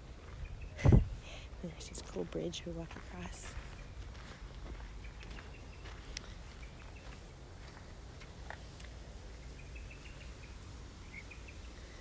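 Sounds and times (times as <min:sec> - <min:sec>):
low outdoor rumble: 0:00.0 - 0:12.0
faint bird chirps: 0:09.3 - 0:12.0.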